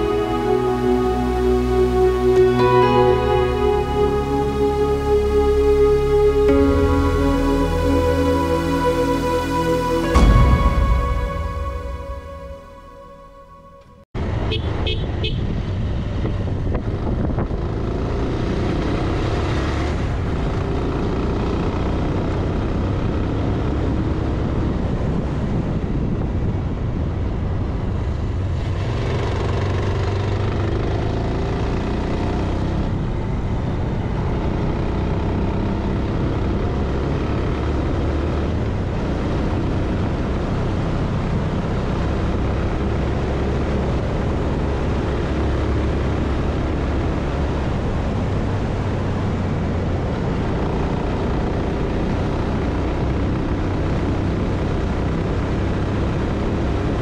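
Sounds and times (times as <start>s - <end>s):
wind rushing on microphone: 15.2s - 19.1s, 24.2s - 29.3s.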